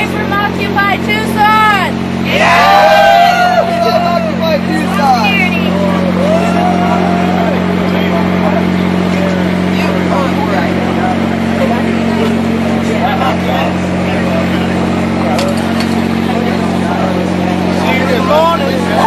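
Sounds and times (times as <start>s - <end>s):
low generator engine hum: 0.0s - 19.0s.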